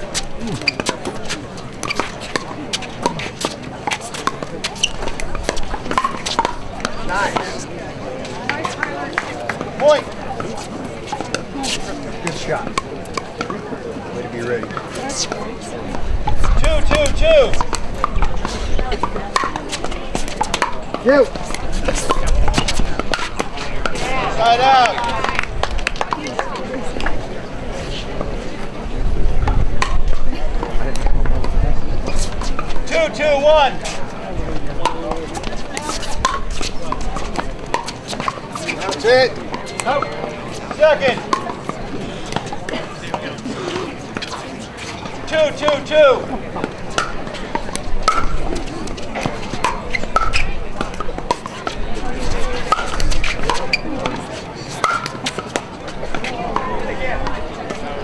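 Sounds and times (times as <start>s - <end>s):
spectators' voices: 0.0s - 58.0s
paddles popping against ball: 1.8s - 7.5s, 19.0s - 24.0s, 34.8s - 39.0s, 46.9s - 51.8s.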